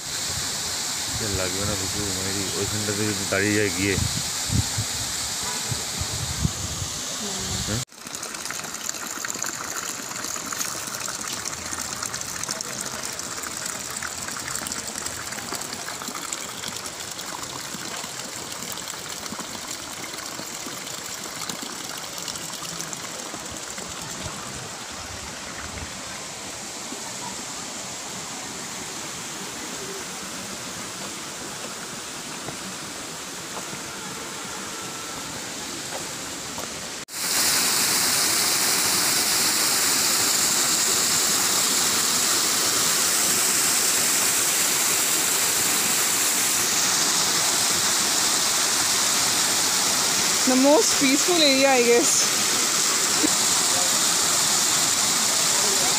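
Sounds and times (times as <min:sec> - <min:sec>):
water rushing over rocks: 0:00.0 - 0:55.9.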